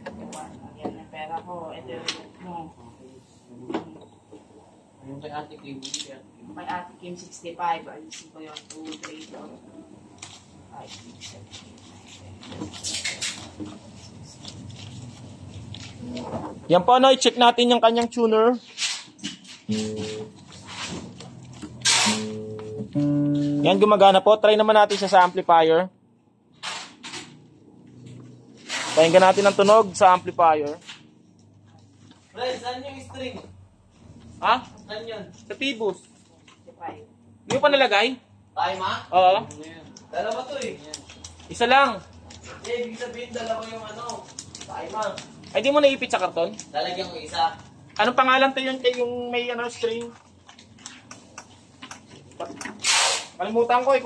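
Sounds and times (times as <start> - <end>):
guitar handling rustle: 19.4 - 23.8
faint clicks and taps: 39.4 - 46.8, 49.8 - 52.8.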